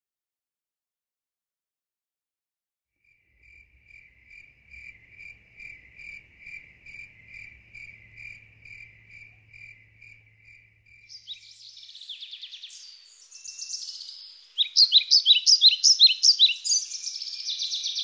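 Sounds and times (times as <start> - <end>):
insect chirping: 3.1 - 18.0.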